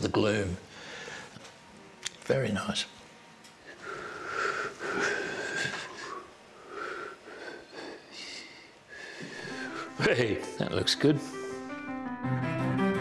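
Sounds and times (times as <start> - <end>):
man wheezing and humming: 4.0 - 10.0.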